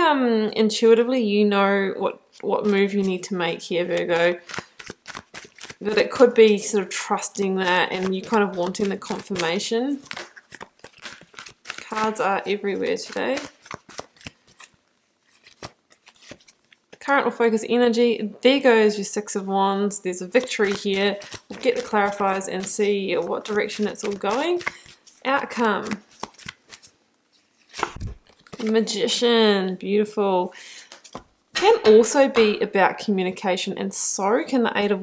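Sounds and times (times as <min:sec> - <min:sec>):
cards being shuffled: 0:02.4 - 0:17.0, 0:20.3 - 0:29.0, 0:30.8 - 0:31.3
cards clicking: 0:03.9 - 0:06.1, 0:07.6 - 0:12.2, 0:12.8 - 0:14.7, 0:25.8 - 0:26.9, 0:27.7 - 0:28.9.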